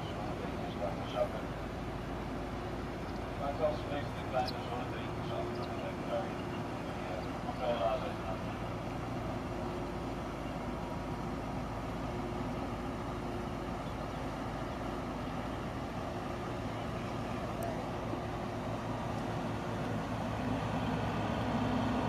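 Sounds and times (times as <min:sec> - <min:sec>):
ship engine drone: 0:00.0 - 0:22.0.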